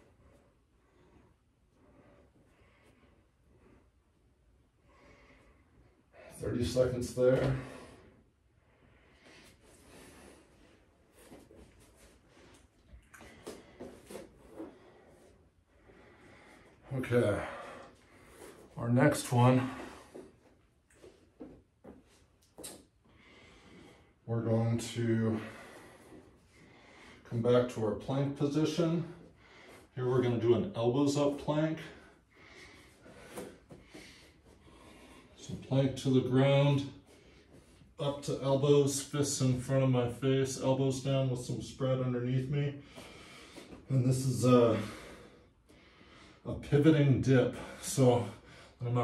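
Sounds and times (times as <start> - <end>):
faint breathing: 0.0 - 30.5, 31.2 - 35.7, 42.7 - 46.5
soft movement on exercise mat: 0.0 - 48.4
rustling on exercise mat: 9.2 - 22.9.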